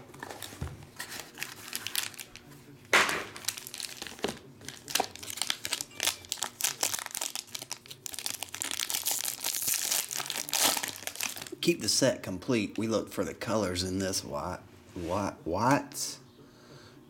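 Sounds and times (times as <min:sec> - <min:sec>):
foil wrappers crinkling and tearing: 0:00.2 - 0:02.5, 0:03.2 - 0:11.6.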